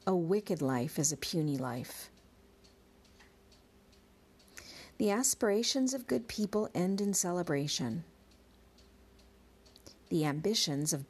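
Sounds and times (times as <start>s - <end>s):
faint steady hum: 0.0s - 11.0s
soft breath in: 4.6s - 5.0s.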